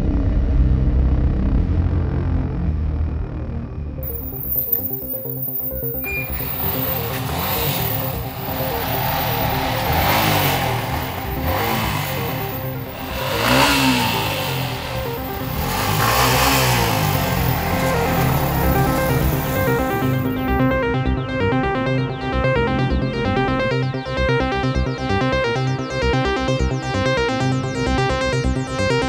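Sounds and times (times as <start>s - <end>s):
background music: 3.2s - 29.0s
motorcycle engine revving: 4.0s - 20.9s.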